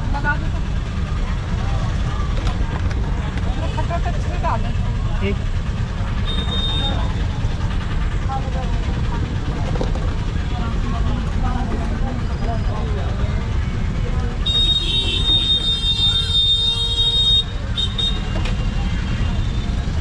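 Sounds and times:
low rumble of street traffic: 0:00.0 - 0:20.0.

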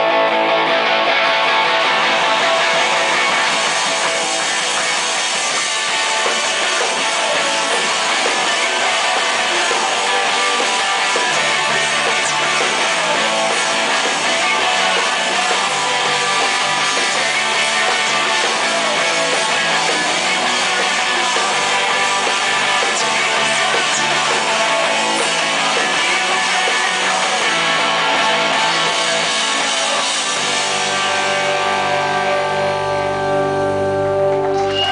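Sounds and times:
electric guitars: 0:00.0 - 0:34.9
live rock band playing: 0:00.0 - 0:34.9.

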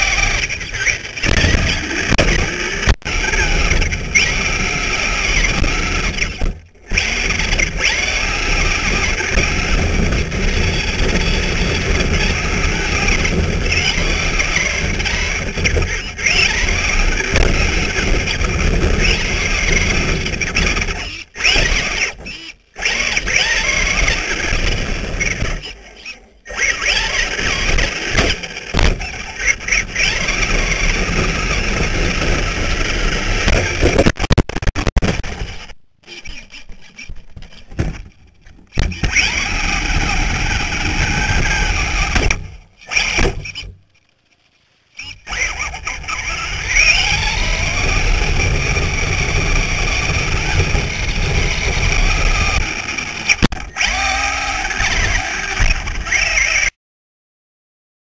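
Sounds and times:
electric motor and gear whine: 0:00.0 - 0:43.8, 0:44.9 - 0:56.8
tyre and chassis rumble: 0:00.0 - 0:44.0, 0:45.0 - 0:56.7.

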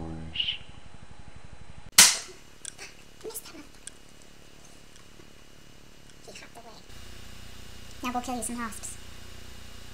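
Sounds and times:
loud gunshot: 0:02.0 - 0:02.4.

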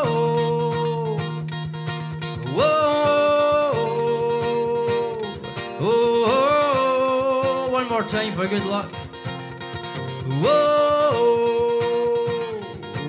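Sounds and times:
acoustic guitar strumming: 0:00.0 - 0:13.0
people singing whoa chant: 0:02.4 - 0:07.4.

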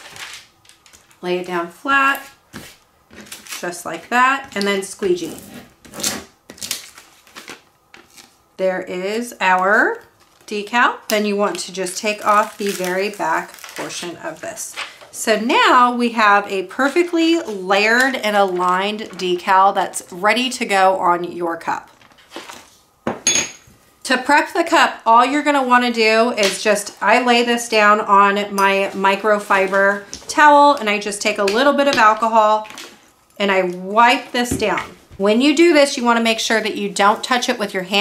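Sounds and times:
paper sheet rustling: 0:00.0 - 0:01.2, 0:22.0 - 0:22.8
glass cup clinking on table: 0:23.1 - 0:23.7.

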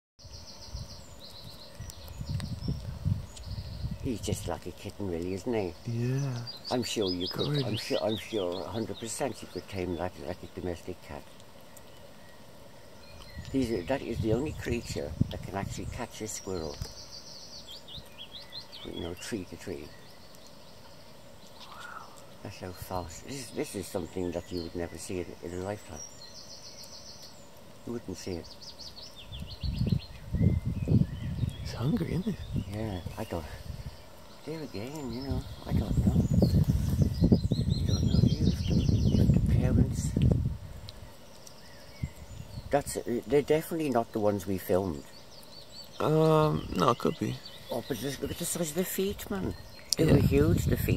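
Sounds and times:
small bird chirping: 0:00.2 - 0:50.9
man speaking: 0:04.1 - 0:11.2, 0:13.6 - 0:16.8, 0:22.4 - 0:26.0, 0:27.8 - 0:28.4, 0:31.6 - 0:33.6, 0:34.5 - 0:36.2, 0:46.0 - 0:50.9.

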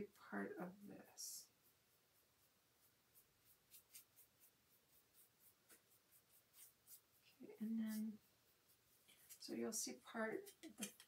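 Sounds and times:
paintbrush scratching on wood: 0:00.7 - 0:11.0.

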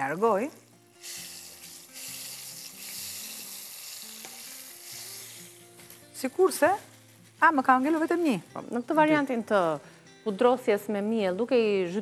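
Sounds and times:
slices sizzling in hot oil: 0:00.0 - 0:08.1.

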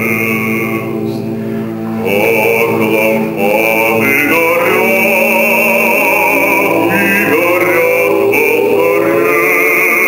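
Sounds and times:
solo male voice singing: 0:00.0 - 0:01.3, 0:01.9 - 0:10.0
male choir singing sustained chords: 0:00.0 - 0:10.0.

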